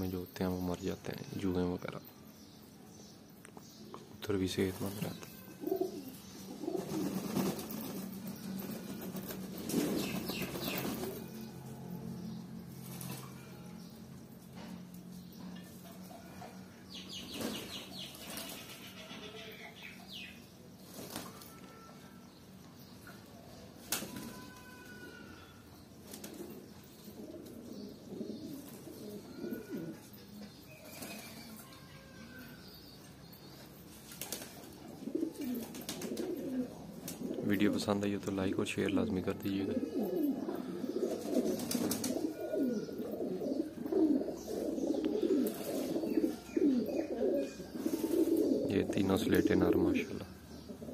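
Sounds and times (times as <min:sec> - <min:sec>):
pigeons cooing: 0:05.0 - 0:13.9, 0:23.1 - 0:32.8, 0:34.1 - 0:50.9
pigeon wings flapping: 0:06.8 - 0:11.2, 0:41.3 - 0:42.2.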